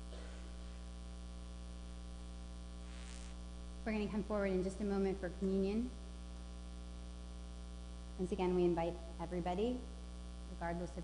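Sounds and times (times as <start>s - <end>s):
electrical mains hum: 0.0s - 11.0s
woman speaking: 3.9s - 6.0s, 8.2s - 11.0s.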